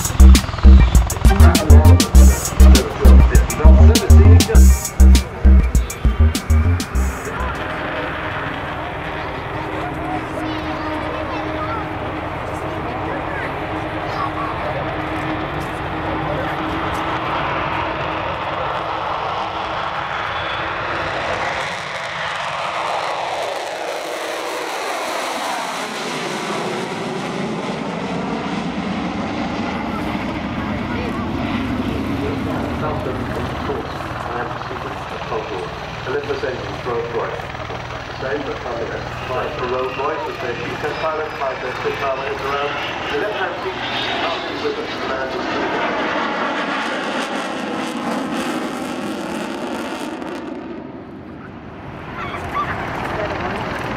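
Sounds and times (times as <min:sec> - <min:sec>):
jet engines roaring: 0:00.0 - 0:53.9.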